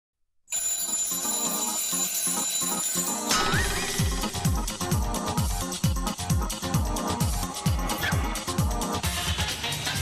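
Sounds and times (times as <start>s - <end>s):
electronic theme music: 3.0s - 10.0s.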